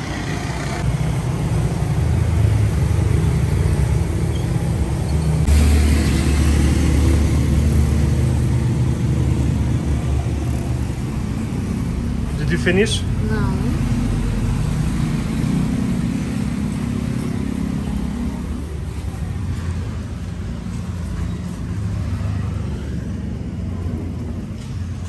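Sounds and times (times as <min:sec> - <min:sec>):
vehicle engine running: 0:00.0 - 0:21.1
street traffic noise: 0:00.0 - 0:25.0.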